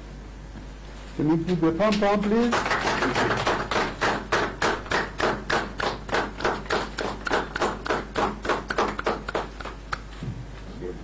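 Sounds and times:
hands clapping: 1.8s - 10.1s.

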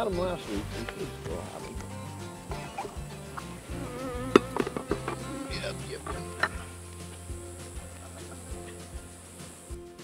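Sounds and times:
bees buzzing: 0.4s - 10.0s.

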